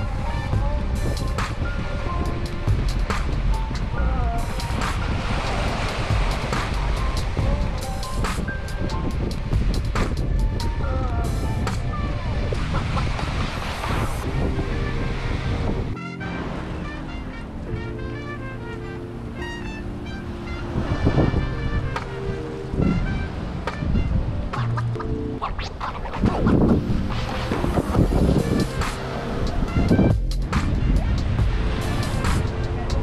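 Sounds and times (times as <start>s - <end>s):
wind buffeting microphone: 0.0s - 17.9s, 19.0s - 33.0s
small waves washing ashore: 0.0s - 25.0s, 25.6s - 33.0s
background music: 0.0s - 33.0s.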